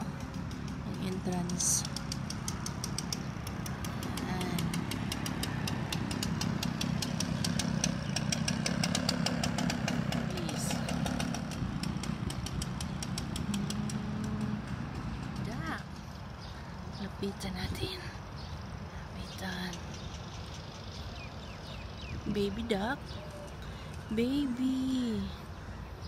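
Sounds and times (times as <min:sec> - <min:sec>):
leaf blower engine droning: 0:00.0 - 0:17.0.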